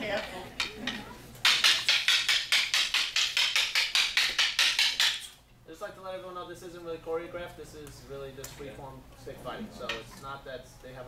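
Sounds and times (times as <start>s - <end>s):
wooden sticks clacking: 0.1s - 5.4s.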